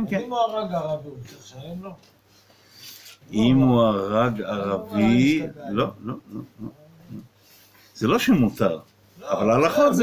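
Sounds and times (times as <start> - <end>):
man murmuring: 4.7 - 7.3.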